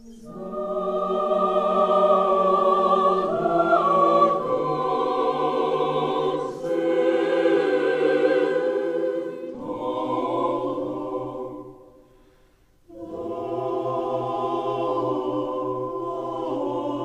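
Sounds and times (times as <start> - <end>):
choir singing sustained chords: 0.0 - 17.0.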